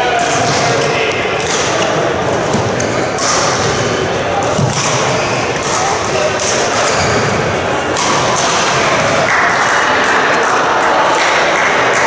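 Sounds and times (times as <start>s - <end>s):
murmur of voices: 0.0s - 12.0s
rackets hitting shuttlecock: 0.0s - 12.0s.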